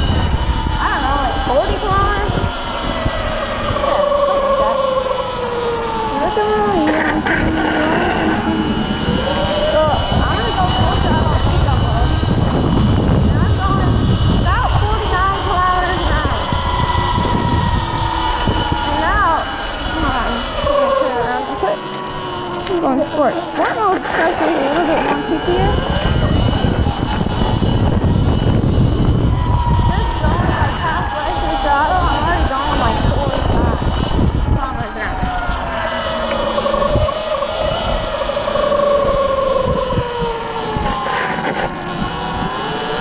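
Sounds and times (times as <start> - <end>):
wavering mid-range tones: 0.0 - 29.2, 29.9 - 43.0
electric motor high whine: 0.0 - 43.0
wind rush on microphone: 0.0 - 43.0.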